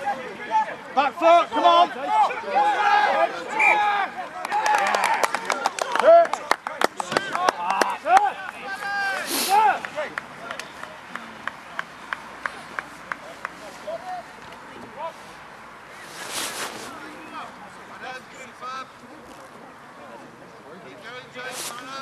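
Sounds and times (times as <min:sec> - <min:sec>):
brief rush of noise: 0:09.2 - 0:09.6.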